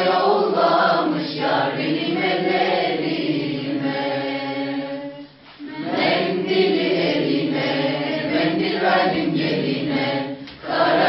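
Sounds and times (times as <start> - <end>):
group singing without accompaniment: 0.0 - 11.0.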